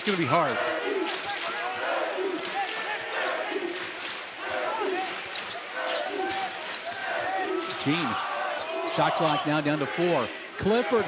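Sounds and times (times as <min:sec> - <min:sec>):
sneakers squeaking: 0:03.5 - 0:09.6.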